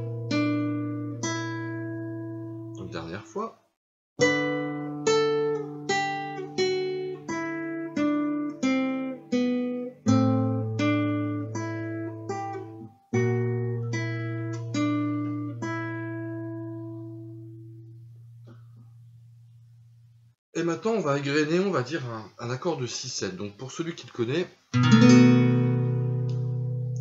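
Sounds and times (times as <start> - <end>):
classical guitar finger-plucked: 0.0 - 2.8, 4.2 - 19.2, 24.7 - 27.0.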